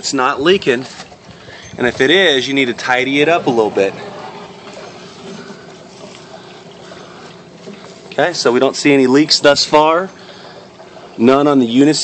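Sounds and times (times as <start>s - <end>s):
water running through plumbing: 0.0s - 12.0s
water splashing into grow bed: 0.0s - 12.0s.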